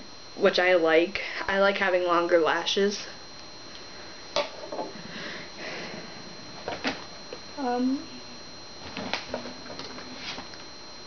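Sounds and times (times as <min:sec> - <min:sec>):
faint high-pitched whine: 0:00.0 - 0:11.0
breathing: 0:01.2 - 0:01.5, 0:04.9 - 0:06.3.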